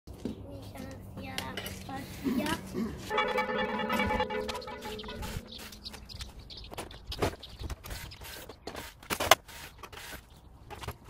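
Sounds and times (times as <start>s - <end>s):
metal objects clinking: 3.1s - 5.6s.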